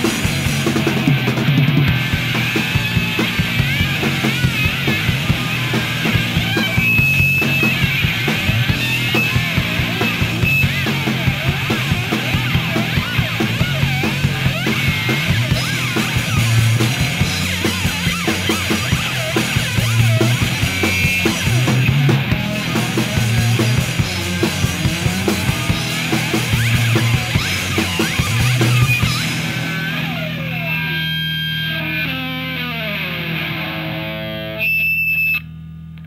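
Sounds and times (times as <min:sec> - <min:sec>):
drums: 0:00.0 - 0:35.0
lead guitar bending pitch: 0:00.0 - 0:35.2
bass guitar: 0:00.0 - 0:36.0
electric guitars: 0:00.0 - 0:36.0.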